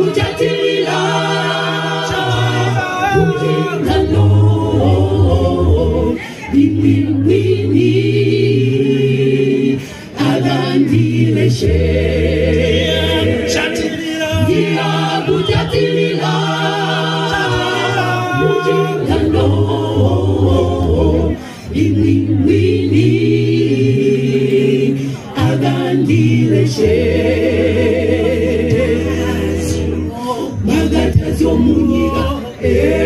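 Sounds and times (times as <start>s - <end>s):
mixed choir singing a cappella: 0.0s - 33.0s.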